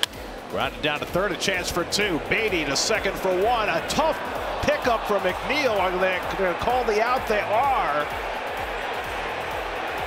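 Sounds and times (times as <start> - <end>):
ballpark crowd noise: 0.0 - 10.0
music playing: 0.0 - 10.0.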